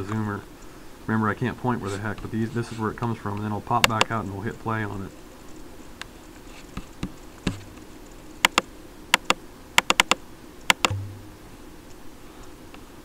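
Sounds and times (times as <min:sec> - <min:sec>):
mouse and keyboard clicks: 0:08.4 - 0:11.0.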